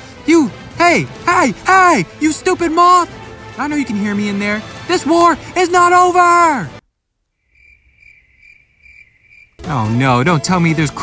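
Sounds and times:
cricket chirps: 7.3s - 9.6s.

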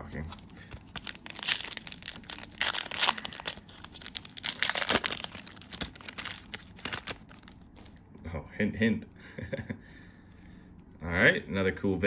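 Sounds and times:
foil wrapper tearing and crinkling: 0.2s - 8.0s.

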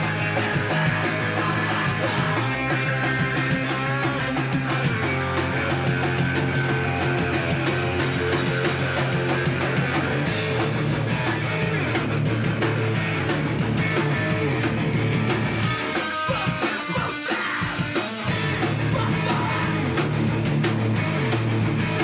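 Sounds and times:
bass guitar: 0.0s - 22.0s
distorted electric guitar: 0.0s - 22.0s
drum beat: 0.0s - 22.0s.

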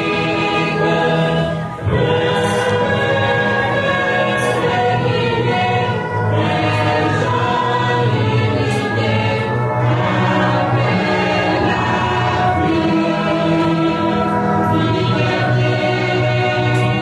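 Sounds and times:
choir singing sustained chords: 0.0s - 17.0s.

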